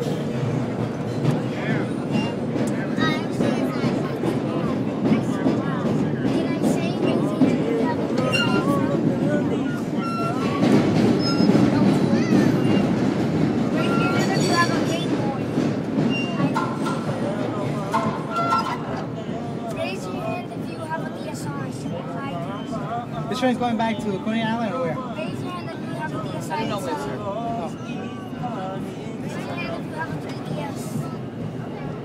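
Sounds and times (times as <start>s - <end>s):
subway train wheels rumbling: 0.0s - 32.0s
short high squeaks: 8.2s - 8.8s, 9.6s - 10.6s, 11.2s - 11.7s.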